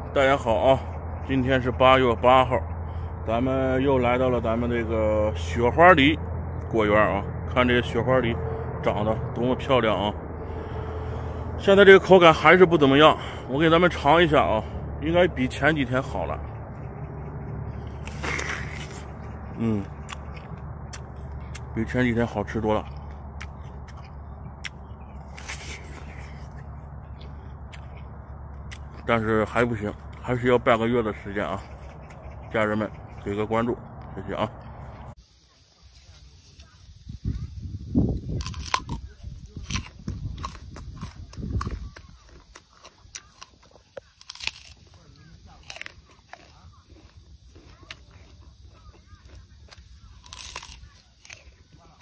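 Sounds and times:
crunching chewing of pear: 0:00.0 - 0:35.2, 0:38.0 - 0:52.0
low background hum: 0:00.0 - 0:52.0.

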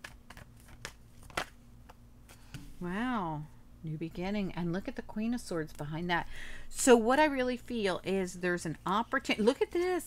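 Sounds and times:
cards snapping and clicking: 0:00.0 - 0:02.0.

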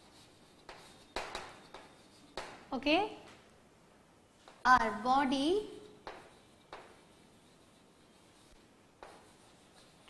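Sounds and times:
chalk writing on blackboard: 0:00.0 - 0:02.7, 0:05.6 - 0:10.0
chalk tapping on board: 0:00.0 - 0:02.8, 0:05.8 - 0:10.0.

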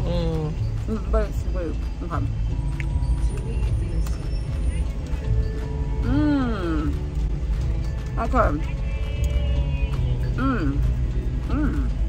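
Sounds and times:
car interior low rumble: 0:00.0 - 0:12.0.

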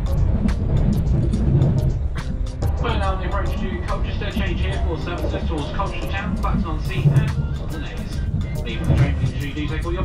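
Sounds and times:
background music with steady beat: 0:00.0 - 0:10.0
onboard announcement: 0:00.0 - 0:10.0
train running rumble: 0:00.0 - 0:10.0.

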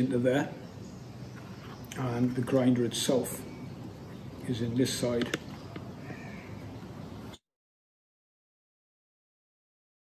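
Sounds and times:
bird calling: 0:00.0 - 0:07.4
faint outdoor background noise: 0:00.0 - 0:07.4.

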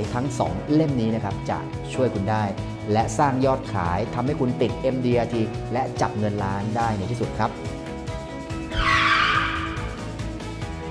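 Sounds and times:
background music with steady beat: 0:00.0 - 0:10.9.

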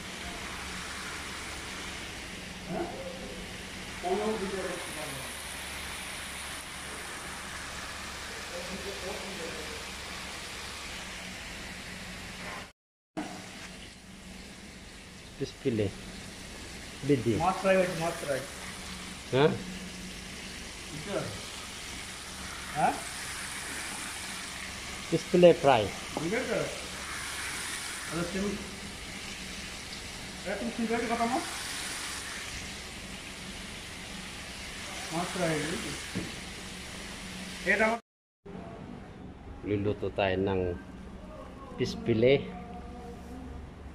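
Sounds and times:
oil sizzling in fryer: 0:00.0 - 0:38.0.

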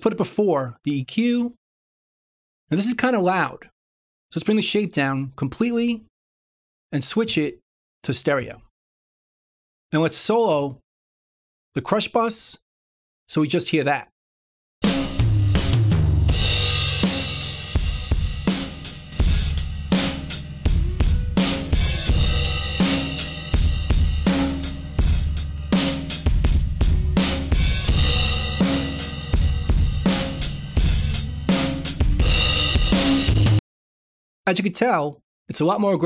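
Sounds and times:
distorted compressed drum kit: 0:14.8 - 0:33.6.

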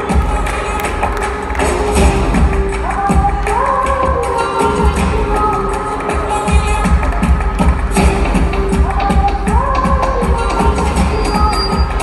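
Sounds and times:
flamenco dance track with electronic beat: 0:00.0 - 0:12.0.

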